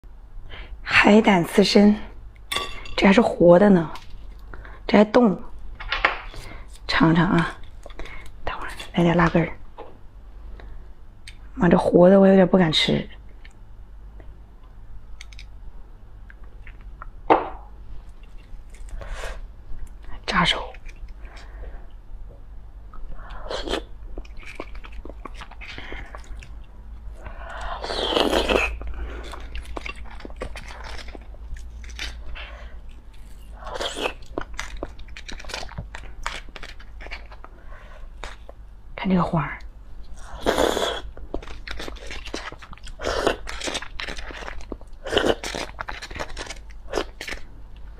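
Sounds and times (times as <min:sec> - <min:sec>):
woman speaking: 0:00.9 - 0:02.2, 0:03.0 - 0:04.0, 0:04.9 - 0:05.5, 0:06.9 - 0:07.6, 0:08.5 - 0:09.6, 0:11.6 - 0:13.2, 0:20.1 - 0:20.8, 0:39.0 - 0:39.7
wet chewing with mouth clicks: 0:22.9 - 0:37.5, 0:40.4 - 0:47.9.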